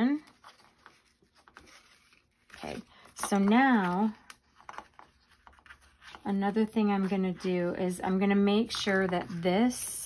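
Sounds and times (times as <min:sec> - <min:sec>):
paper pages rustling: 0:00.1 - 0:09.8.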